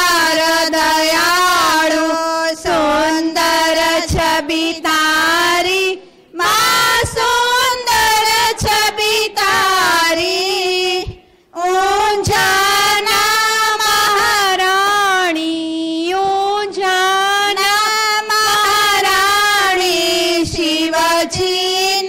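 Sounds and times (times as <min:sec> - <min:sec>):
woman singing a hymn: 0:00.0 - 0:22.0.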